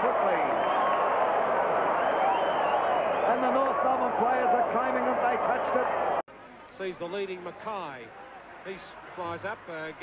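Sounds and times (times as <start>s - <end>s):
stadium crowd shouting: 0.0s - 6.2s.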